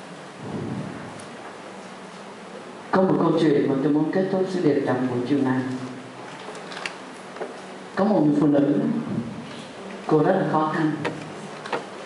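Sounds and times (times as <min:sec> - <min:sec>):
steady hissing noise: 0:00.0 - 0:12.0.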